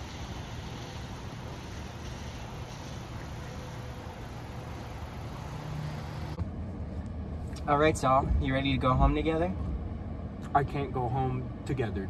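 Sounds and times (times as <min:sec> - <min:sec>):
rain hissing: 0:00.0 - 0:06.4
car engine hum: 0:00.0 - 0:12.0.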